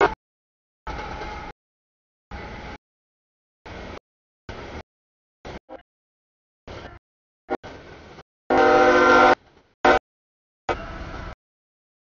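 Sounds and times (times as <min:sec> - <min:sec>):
freight train rolling: 0:00.9 - 0:01.6, 0:02.3 - 0:02.8, 0:03.7 - 0:04.8, 0:07.6 - 0:10.0, 0:10.7 - 0:11.4
locomotive horn chord: 0:08.5 - 0:10.0.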